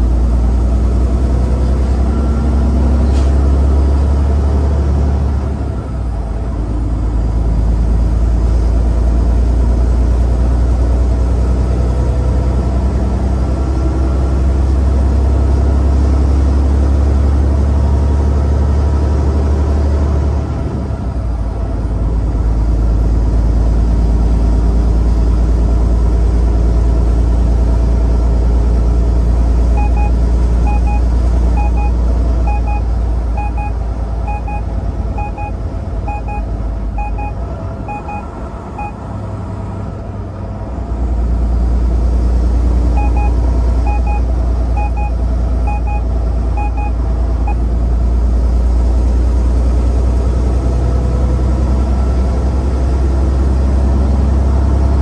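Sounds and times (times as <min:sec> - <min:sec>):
truck engine and road noise: 0:00.0 - 0:55.0
dashboard beep: 0:29.8 - 0:39.0, 0:43.0 - 0:47.7.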